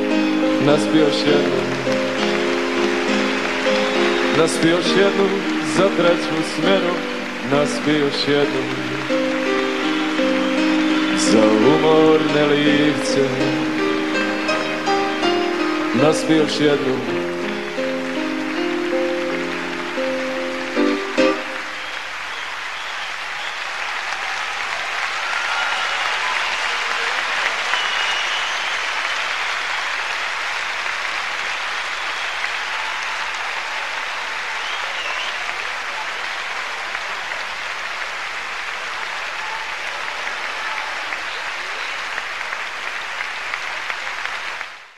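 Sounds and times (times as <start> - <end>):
audience applauding: 0.0 - 44.9.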